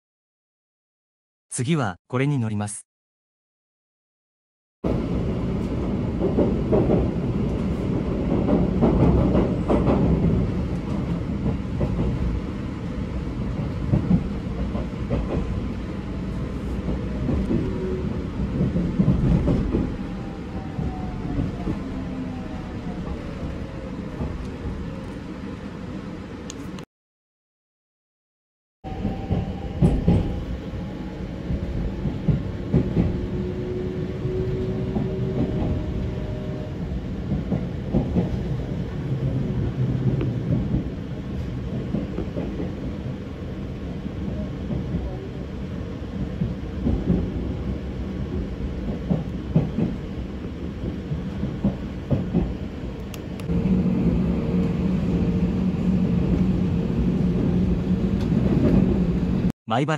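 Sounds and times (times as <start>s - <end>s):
train wheels rumbling on rail: 4.9s - 26.8s, 28.9s - 59.5s.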